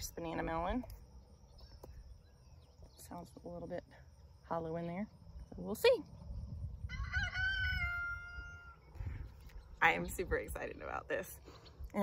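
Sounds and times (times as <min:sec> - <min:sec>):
rooster crowing: 0:06.8 - 0:08.9.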